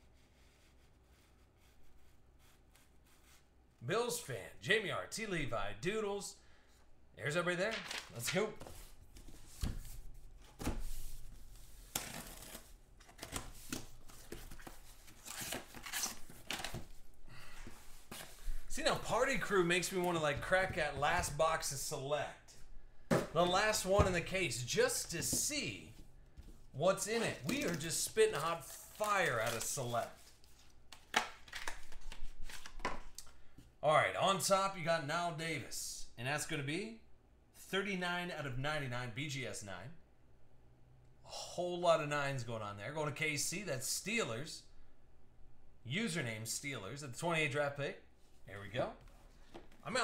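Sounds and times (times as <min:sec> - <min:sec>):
cardboard rustling and scraping: 0:07.8 - 0:21.4, 0:25.0 - 0:30.7
packing tape tearing: 0:11.9 - 0:13.5, 0:14.5 - 0:16.8.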